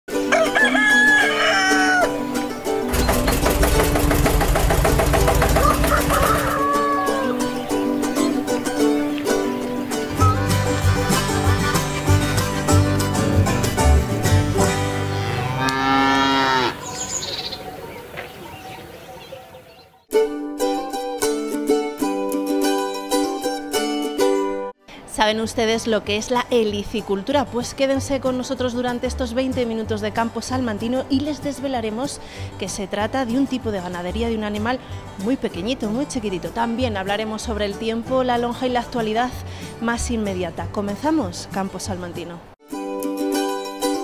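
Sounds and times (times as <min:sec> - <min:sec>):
upbeat theme music: 0:00.1 - 0:15.3
country-style jingle: 0:00.1 - 0:16.0
rooster crowing: 0:00.3 - 0:02.2, 0:05.5 - 0:07.5
sustained music chords: 0:02.3 - 0:16.8
cow mooing: 0:14.8 - 0:16.9
high bird chirp: 0:16.8 - 0:20.0.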